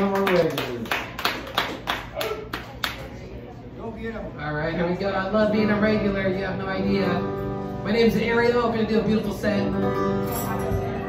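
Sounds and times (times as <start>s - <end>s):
scattered applause: 0.0s - 3.2s.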